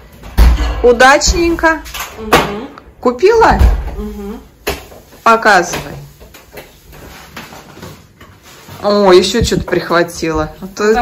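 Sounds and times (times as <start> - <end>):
rustling at door: 3.2 - 11.0.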